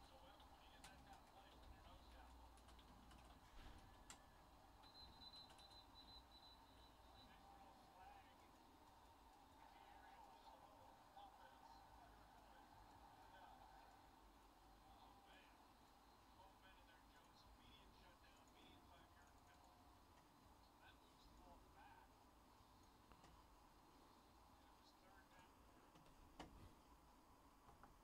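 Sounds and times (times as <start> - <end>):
soft keyboard clicks: 0.1 - 10.6, 17.2 - 20.3, 22.8 - 23.5, 25.8 - 26.8.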